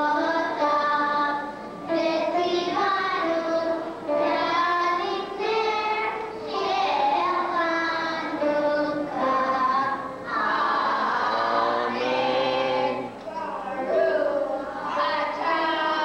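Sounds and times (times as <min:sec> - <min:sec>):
children singing: 0:00.0 - 0:16.0.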